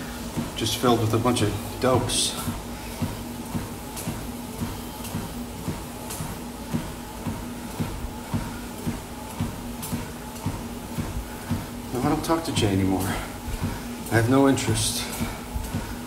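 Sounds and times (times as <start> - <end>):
steady low hum: 0.0 - 16.0
walking footsteps: 0.0 - 16.0.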